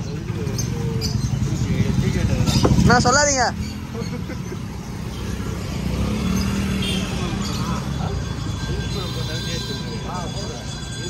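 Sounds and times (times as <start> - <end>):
street traffic rumble: 0.0 - 11.0
vehicle engine running nearby: 0.0 - 11.0.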